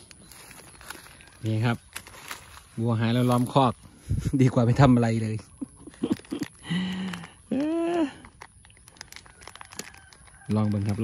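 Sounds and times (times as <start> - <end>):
dry vegetation crackling: 0.0 - 11.0.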